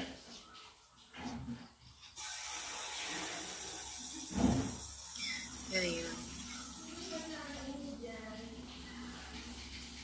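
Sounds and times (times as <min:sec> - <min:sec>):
steady hiss: 0:02.2 - 0:10.0.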